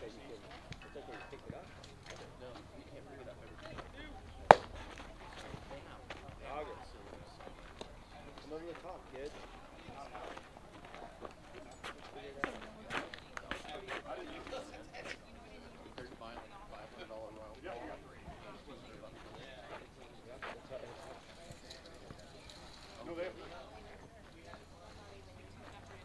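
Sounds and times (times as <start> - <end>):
faint voices: 0.0 - 26.0
baseball smacking into leather mitt: 4.4 - 4.9.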